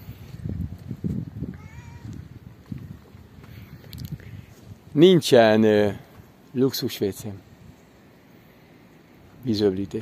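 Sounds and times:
footsteps: 0:00.2 - 0:04.9.

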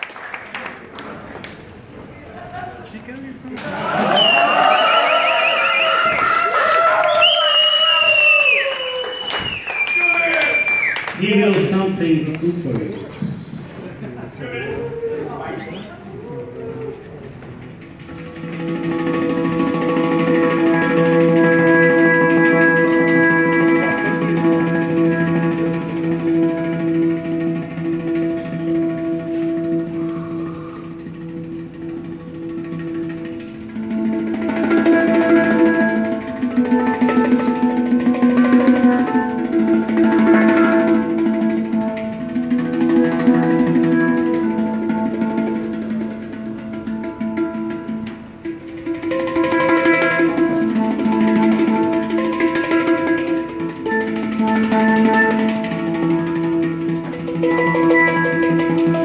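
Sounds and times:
audience applauding and cheering: 0:00.0 - 0:01.8, 0:03.6 - 0:12.0
long shrill whistles: 0:04.1 - 0:11.1
handpan ringing chord: 0:17.9 - 0:59.0.

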